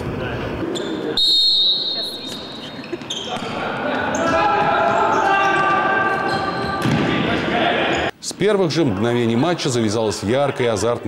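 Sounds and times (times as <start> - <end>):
referee's whistle: 1.2 - 3.3
ball thudding on wooden court: 6.8 - 7.1.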